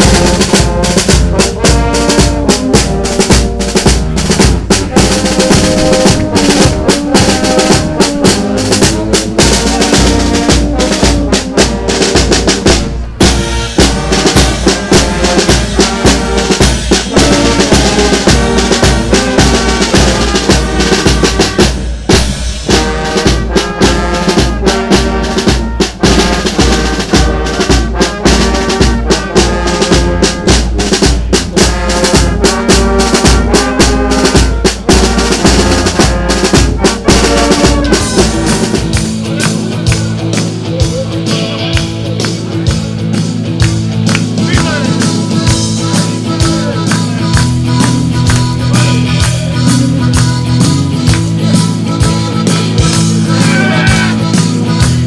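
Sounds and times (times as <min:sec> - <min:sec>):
brass band playing: 0:00.0 - 0:55.0
snare and bass drum beat: 0:00.0 - 0:55.0.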